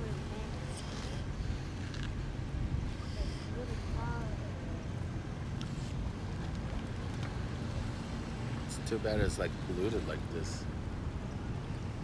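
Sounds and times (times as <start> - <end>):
wind rumbling on microphone: 0.0 - 8.6.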